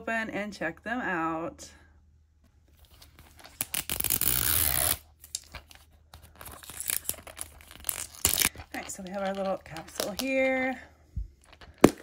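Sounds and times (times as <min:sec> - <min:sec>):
plastic film crinkling: 0:02.8 - 0:10.4
plastic wrap tearing: 0:03.0 - 0:10.3.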